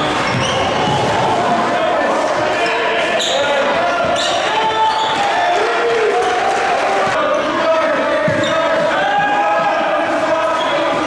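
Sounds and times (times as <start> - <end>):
sneakers squeaking: 0.0 - 5.5, 7.1 - 9.2, 10.3 - 11.0
echoing voices: 0.0 - 11.0.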